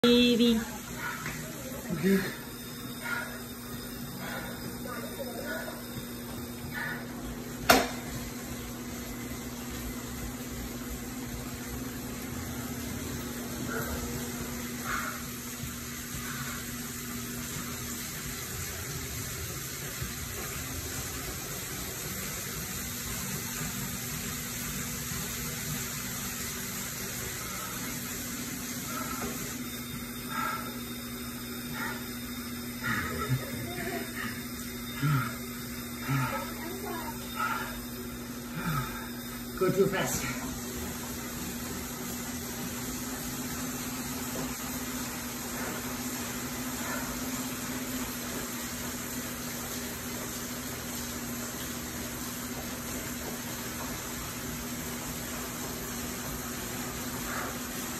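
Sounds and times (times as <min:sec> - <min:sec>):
bike trainer whirring: 0:00.0 - 0:57.9.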